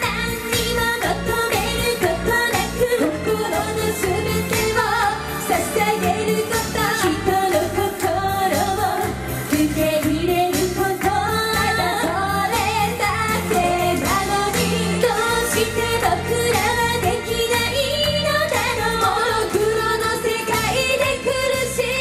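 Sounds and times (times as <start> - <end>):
female group singing: 0.0 - 22.0
pop backing music: 0.0 - 22.0.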